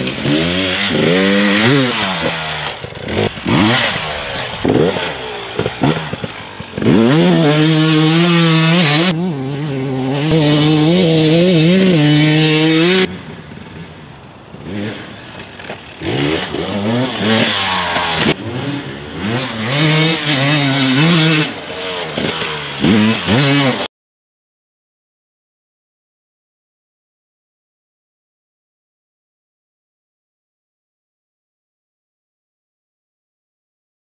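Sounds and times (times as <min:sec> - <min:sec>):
dirt bike engine revving: 0:00.0 - 0:23.9.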